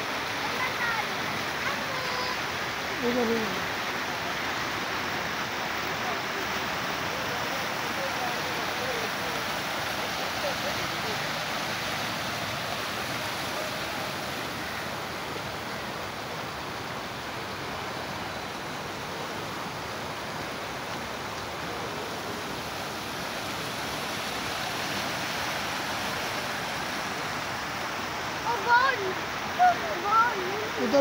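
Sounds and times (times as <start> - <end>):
floodwater rushing across street: 0.0 - 31.0.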